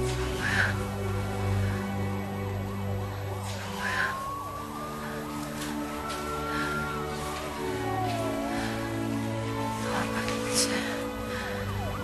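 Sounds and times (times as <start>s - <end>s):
emergency siren wailing: 0.0s - 12.0s
soft film score: 0.0s - 12.0s.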